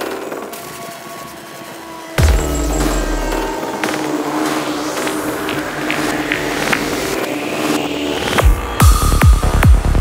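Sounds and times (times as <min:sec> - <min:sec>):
rising synth sweep: 0:00.8 - 0:10.0
sustained synth tones: 0:01.5 - 0:08.4.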